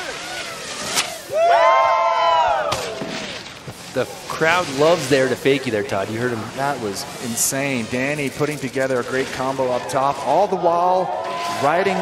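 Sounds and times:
voices cheering and whooping: 1.2s - 3.4s, 9.6s - 12.0s.

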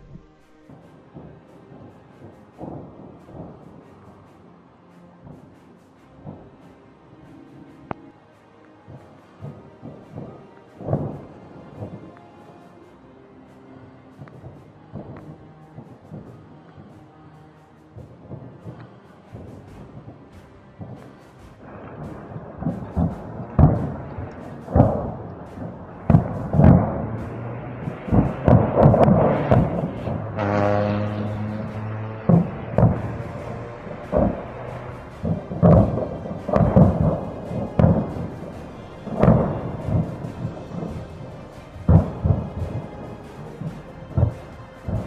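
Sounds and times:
ammunition explosions booming: 26.0s - 41.1s.

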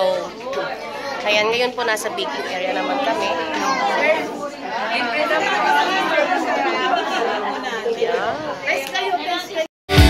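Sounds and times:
women chattering: 0.0s - 9.7s.

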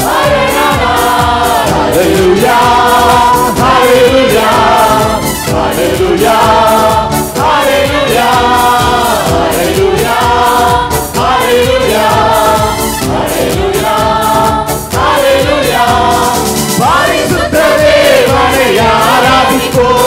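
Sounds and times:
band accompaniment beat: 0.0s - 20.0s
choir singing worship song: 0.0s - 20.0s.

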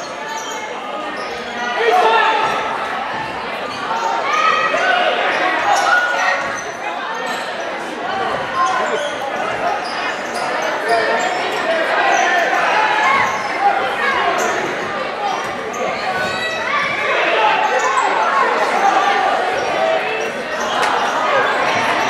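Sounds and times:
people shouting: 1.8s - 2.8s, 11.1s - 22.0s.

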